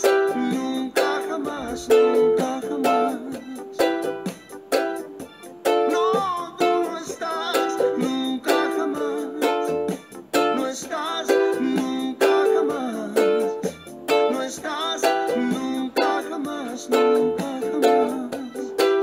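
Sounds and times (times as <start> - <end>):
ukulele strumming: 0.0 - 19.0.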